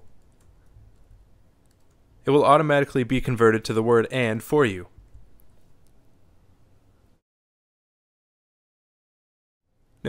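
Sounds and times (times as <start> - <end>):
typing on a computer keyboard: 0.0 - 2.0.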